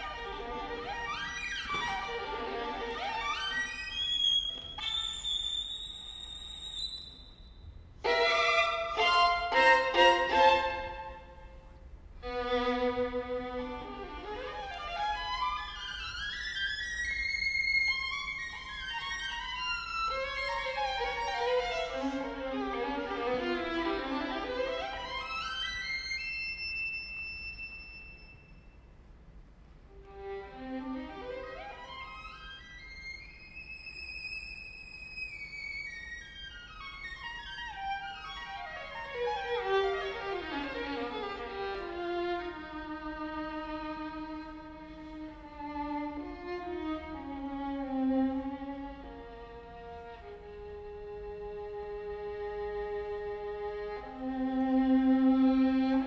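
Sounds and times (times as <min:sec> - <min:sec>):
solo violin: 0:00.0 - 0:07.3, 0:08.0 - 0:28.5, 0:29.9 - 0:56.0
violin playing high note: 0:08.0 - 0:11.6.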